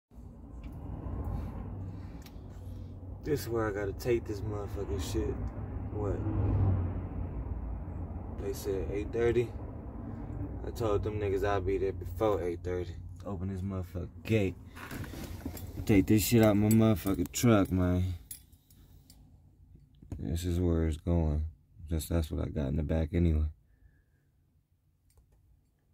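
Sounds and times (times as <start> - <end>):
man talking: 3.2 - 6.2, 8.4 - 9.6, 10.6 - 14.6, 15.8 - 18.2, 20.1 - 23.5.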